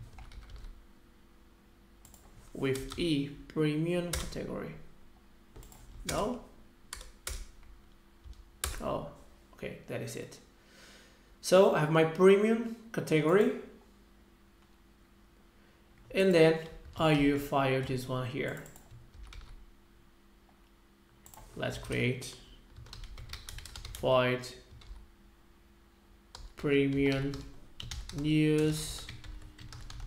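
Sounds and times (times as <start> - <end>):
computer keyboard clicks: 0.0 - 0.7, 5.6 - 6.2, 22.8 - 24.0, 26.4 - 30.0
faint low hum: 0.0 - 30.0.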